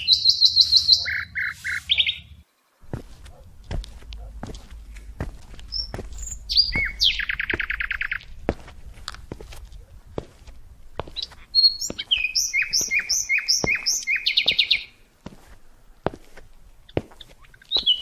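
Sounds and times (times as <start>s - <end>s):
songbird singing: 0.0s - 16.0s, 16.6s - 18.0s.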